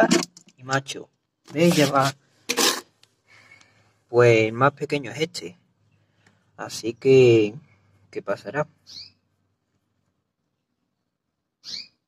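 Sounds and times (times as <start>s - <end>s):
scraping rub: 1.5s - 2.9s.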